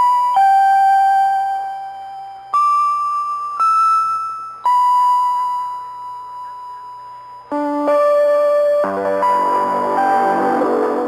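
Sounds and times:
slow keyboard melody: 0.0s - 11.0s.

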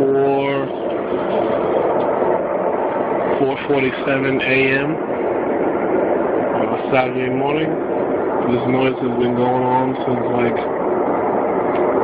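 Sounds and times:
loud rushing drone: 0.0s - 12.0s.

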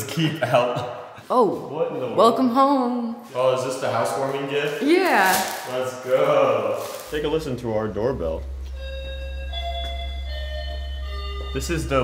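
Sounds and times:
low steady hum: 6.3s - 12.0s
electronic doorbell chime melody: 8.6s - 12.0s.

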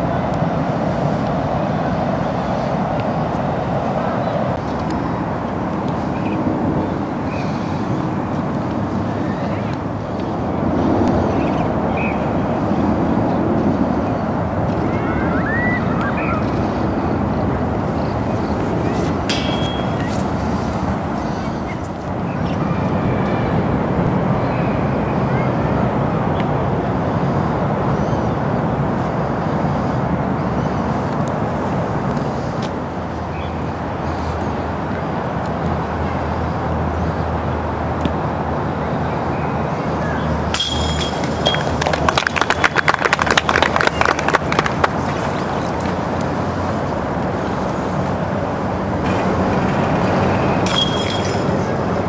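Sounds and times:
distant voices: 0.0s - 26.8s, 38.8s - 52.0s
disc striking metal chains: 19.3s - 20.8s, 40.6s - 41.8s, 49.1s - 52.0s
spectators clapping: 41.5s - 45.2s.

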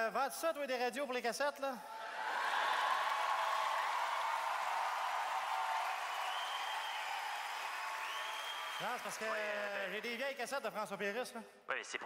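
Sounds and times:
audience applauding: 2.0s - 10.4s.

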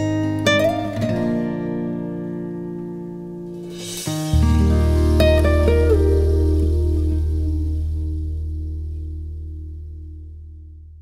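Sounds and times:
plucked acoustic guitar notes: 0.0s - 10.0s
held low bass note: 4.0s - 11.0s.

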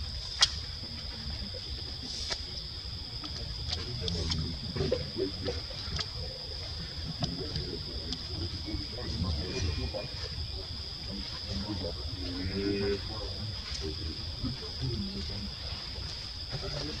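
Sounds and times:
high-pitched insect drone: 0.0s - 17.0s.

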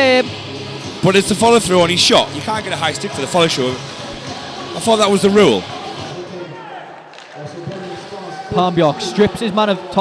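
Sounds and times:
commentary: 0.0s - 10.0s
low arena ambience: 0.0s - 10.0s.

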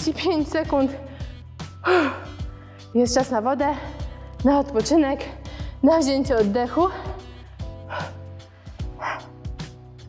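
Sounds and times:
workout music with steady beat: 0.0s - 10.0s.

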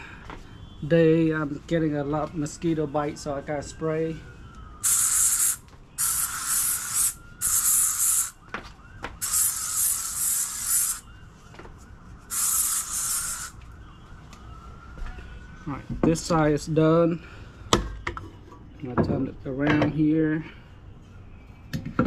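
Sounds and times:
aerosol can spraying: 4.8s - 8.4s, 9.2s - 11.0s, 12.3s - 13.6s.

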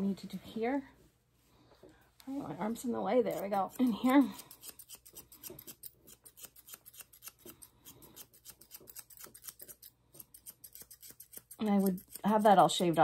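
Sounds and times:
shears snipping hair: 2.5s - 13.0s.

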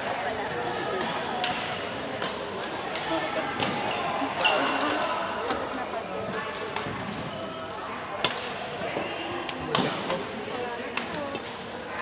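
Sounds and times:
voices in echoing hall: 0.0s - 12.0s
rackets hitting shuttlecock: 0.9s - 5.6s
shoes squeaking on floor: 2.7s - 3.0s, 3.9s - 4.9s.

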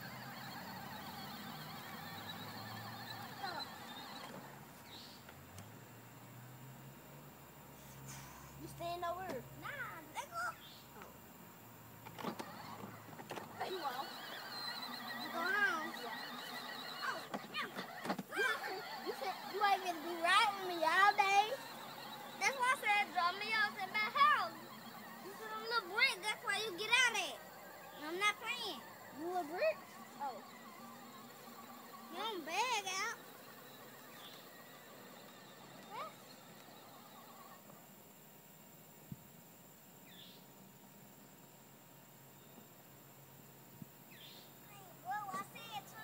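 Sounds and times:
knocks of buggy bumping: 0.0s - 5.0s, 12.0s - 37.6s, 45.1s - 46.0s
electric motors whirring: 0.0s - 7.7s, 11.0s - 38.2s
child's voice: 3.2s - 3.8s, 8.6s - 11.2s, 13.6s - 21.7s, 22.3s - 30.6s, 32.0s - 33.2s, 35.8s - 36.2s, 44.6s - 46.0s.

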